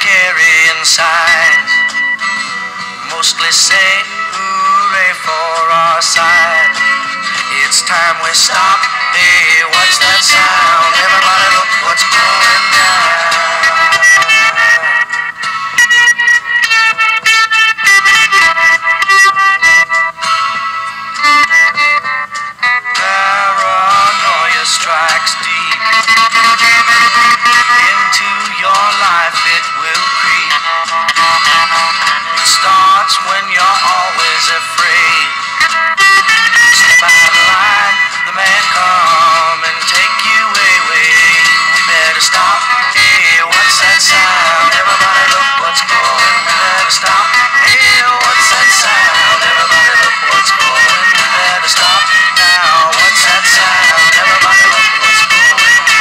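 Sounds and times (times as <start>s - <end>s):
person singing over instrumental backing: 0.0s - 17.8s, 19.6s - 56.0s.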